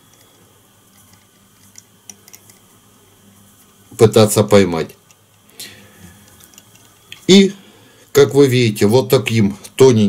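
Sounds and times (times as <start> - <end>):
small clicks and handling noises: 0.0 - 2.7, 6.2 - 7.3
room hum: 0.0 - 10.0.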